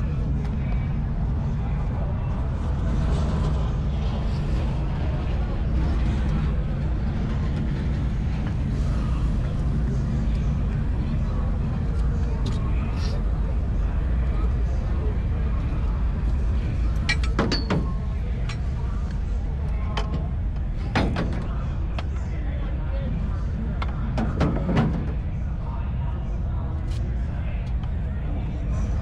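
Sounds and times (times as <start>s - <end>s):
indistinct voices: 0.0s - 29.0s
race car engines rumbling: 0.0s - 29.0s.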